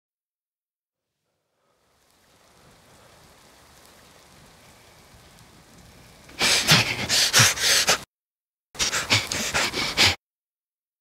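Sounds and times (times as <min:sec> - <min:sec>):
faint patter-like hiss: 0:01.1 - 0:08.0.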